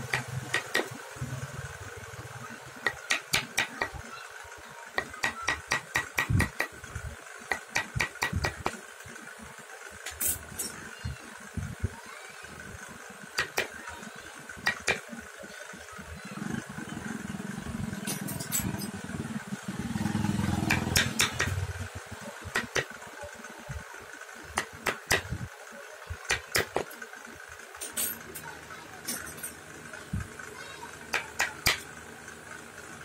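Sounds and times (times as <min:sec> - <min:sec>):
low engine: 0:00.0 - 0:33.0
chisel tapping into wood: 0:20.7 - 0:21.6.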